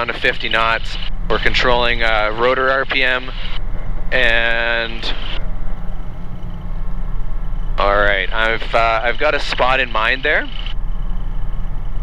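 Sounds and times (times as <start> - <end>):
helicopter rotor drone: 0.0 - 12.0.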